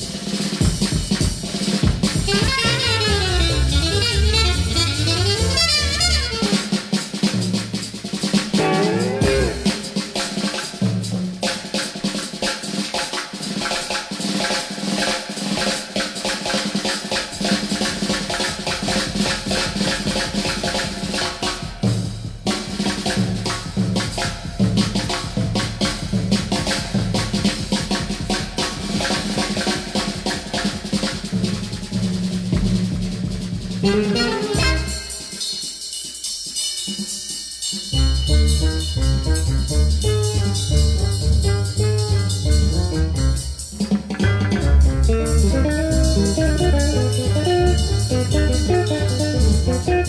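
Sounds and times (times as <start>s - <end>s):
bass drum and tom accents: 0.0s - 12.8s, 16.4s - 35.4s, 37.9s - 50.0s
rapid snare drum rolls: 0.0s - 38.0s, 40.0s - 50.0s.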